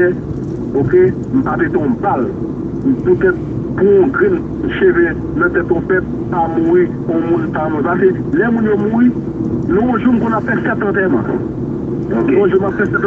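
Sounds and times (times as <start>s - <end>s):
low background rumble: 0.0s - 13.0s
person talking: 12.1s - 13.0s.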